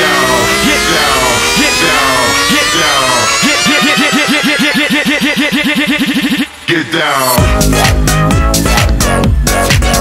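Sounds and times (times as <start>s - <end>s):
gritty synth note pitch-bending: 0.0s - 8.8s.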